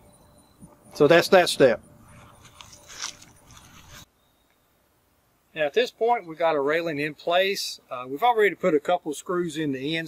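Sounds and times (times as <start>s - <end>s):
faint scraping: 2.0s - 4.1s.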